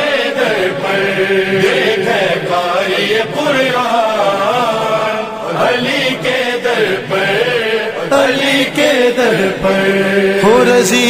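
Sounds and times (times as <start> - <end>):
man singing devotional song: 1.6 - 11.0.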